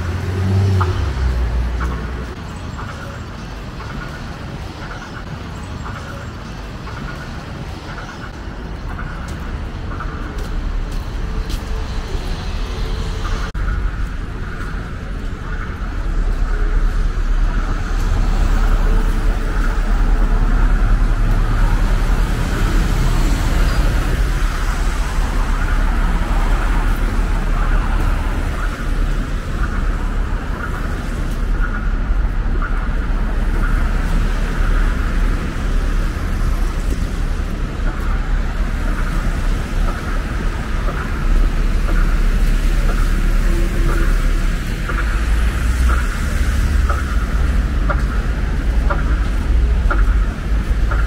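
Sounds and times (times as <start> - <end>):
city street traffic: 0.0 - 51.0.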